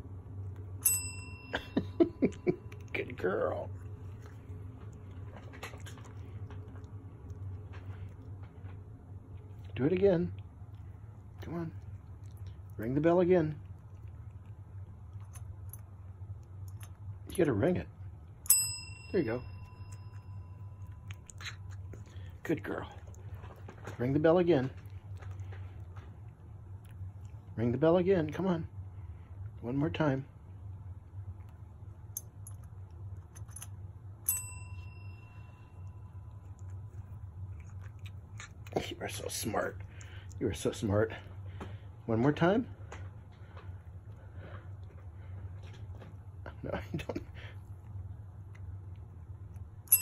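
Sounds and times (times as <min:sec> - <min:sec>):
low steady hum: 0:00.0 - 0:50.0
desk service bell ding: 0:00.8 - 0:01.9, 0:18.5 - 0:20.4, 0:34.3 - 0:35.6.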